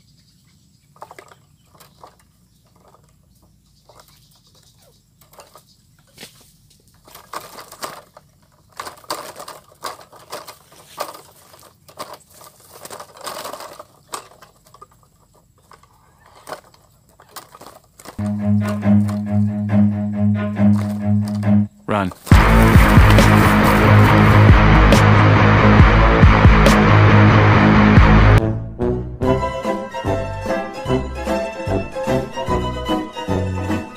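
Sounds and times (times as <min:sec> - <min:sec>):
rustling against wire and dry grass: 0:00.9 - 0:19.2, 0:22.0 - 0:24.5.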